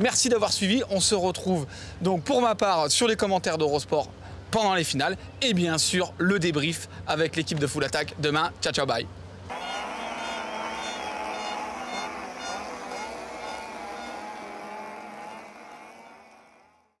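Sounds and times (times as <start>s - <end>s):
wavering drone: 9.5s - 16.4s.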